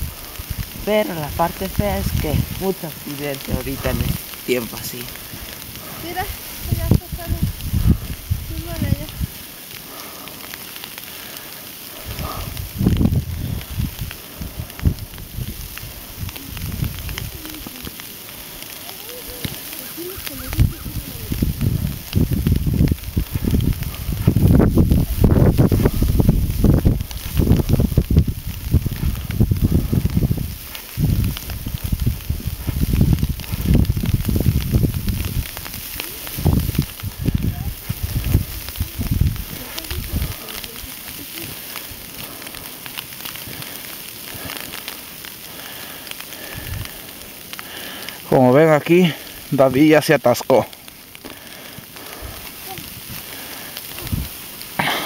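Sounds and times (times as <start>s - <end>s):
footsteps crunching in snow: 0.0s - 10.8s, 11.9s - 47.4s
wind buffeting microphone: 0.0s - 10.8s, 11.8s - 48.1s, 51.1s - 55.0s.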